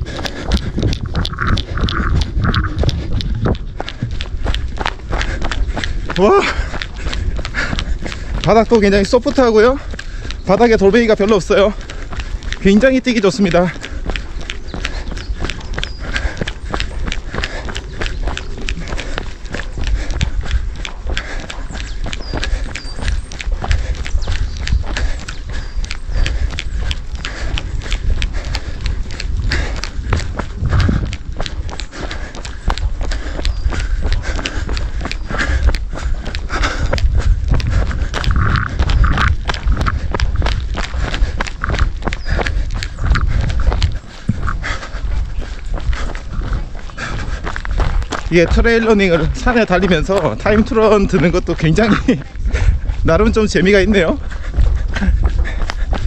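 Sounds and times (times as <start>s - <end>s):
running footsteps on dirt: 0.0s - 56.0s.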